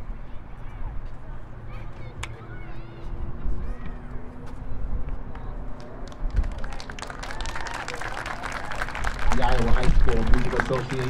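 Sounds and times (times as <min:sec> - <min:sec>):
faint talk nearby: 0:00.0 - 0:11.0
small crowd clapping: 0:05.3 - 0:11.0.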